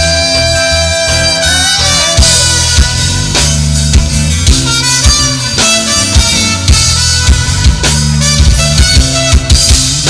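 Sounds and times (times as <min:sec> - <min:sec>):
acoustic and electric guitars: 0:00.0 - 0:10.0
drum kit beat: 0:00.0 - 0:10.0
wind instrument lead line: 0:00.0 - 0:10.0.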